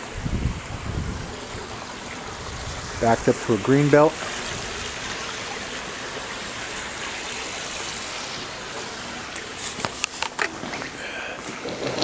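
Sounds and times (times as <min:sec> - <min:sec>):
wind buffeting microphone: 0:00.0 - 0:05.2
steady hiss: 0:00.0 - 0:11.7.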